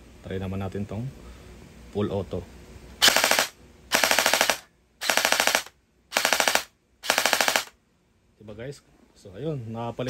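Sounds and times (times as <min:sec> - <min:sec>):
gel blaster firing full auto: 0:03.0 - 0:07.8.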